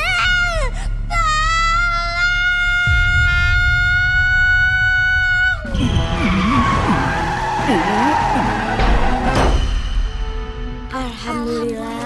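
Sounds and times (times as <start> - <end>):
child screaming: 0.0 - 5.7.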